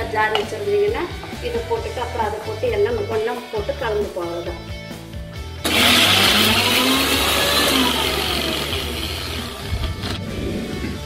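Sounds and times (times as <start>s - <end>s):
mixer grinder motor running: 5.6s - 10.4s.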